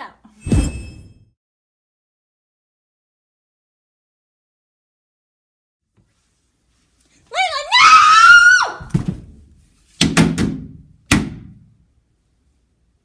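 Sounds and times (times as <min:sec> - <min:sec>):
thumps: 0:08.8 - 0:09.4.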